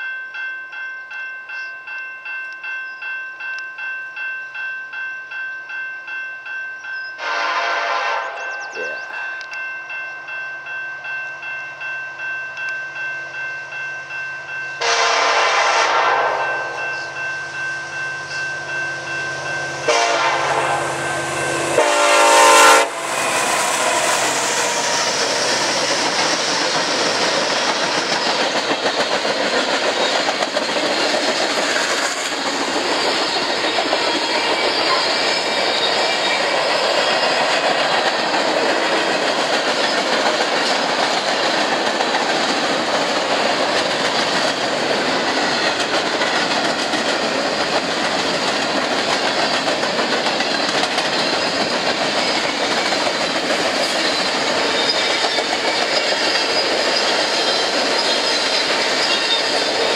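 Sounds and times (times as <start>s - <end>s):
train engine and wheel noise: 0.0s - 59.9s
locomotive air horn blasts: 7.2s - 8.6s, 14.8s - 16.8s, 19.8s - 25.2s
bell ringing: 8.4s - 15.2s, 16.4s - 22.1s.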